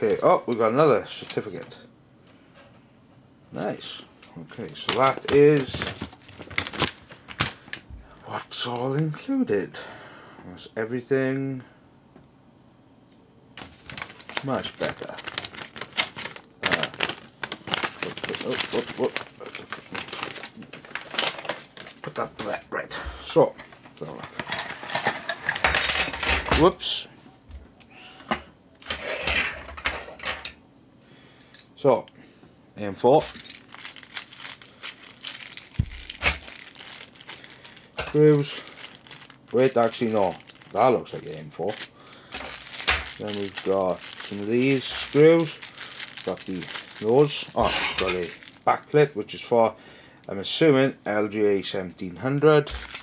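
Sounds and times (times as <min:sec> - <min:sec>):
paper crinkling and rustling: 0:04.4 - 0:07.9, 0:13.6 - 0:22.6, 0:33.2 - 0:48.8, 0:52.4 - 0:53.0.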